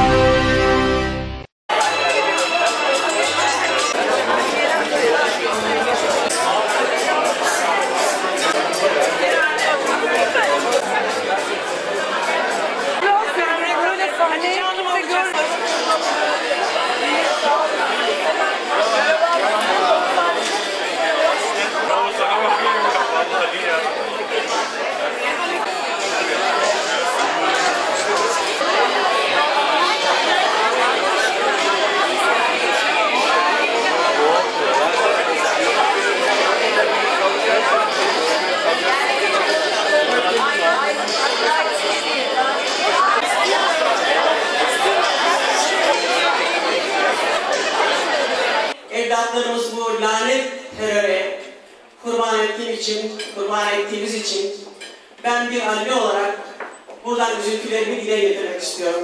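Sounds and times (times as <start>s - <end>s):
crowd chatter: 0.0s - 59.0s.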